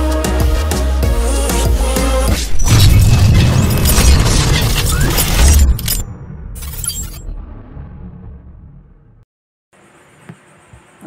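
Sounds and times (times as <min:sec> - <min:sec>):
shattering glass crash: 0:02.4 - 0:06.0, 0:06.6 - 0:07.3.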